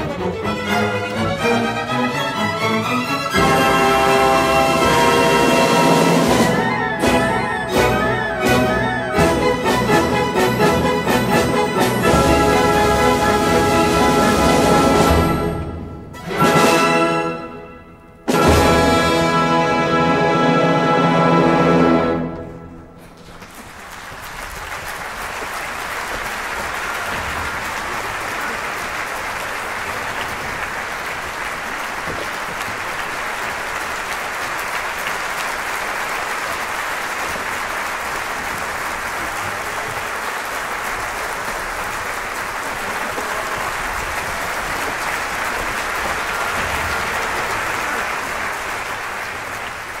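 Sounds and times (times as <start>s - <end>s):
audience applauding: 0.0s - 15.8s, 23.0s - 50.0s.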